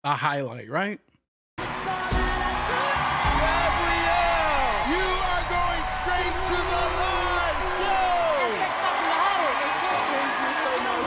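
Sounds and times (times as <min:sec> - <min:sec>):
background music: 0:01.6 - 0:11.0
crowd noise: 0:02.8 - 0:11.0.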